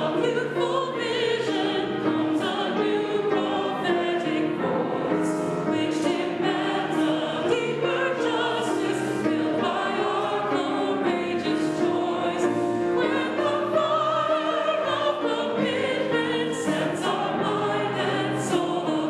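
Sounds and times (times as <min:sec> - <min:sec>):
choir and congregation singing hymn: 0:00.0 - 0:19.0.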